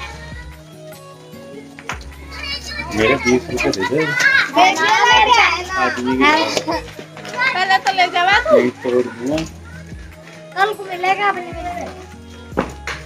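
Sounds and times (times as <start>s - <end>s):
background music: 0.0s - 13.0s
children and women chattering: 2.1s - 12.2s.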